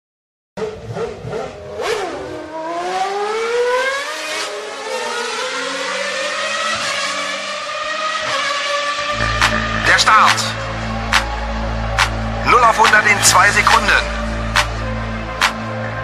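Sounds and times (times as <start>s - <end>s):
race car engine sound effect: 0.6s - 16.0s.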